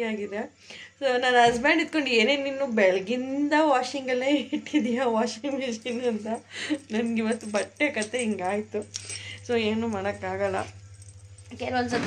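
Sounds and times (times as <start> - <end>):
woman talking: 0.0 - 10.8, 11.5 - 12.0
steady low hum: 0.0 - 12.0.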